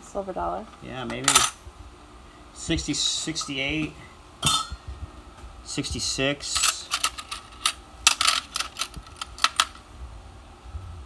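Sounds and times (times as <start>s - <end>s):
coins clicking in plastic box: 6.5s - 9.8s.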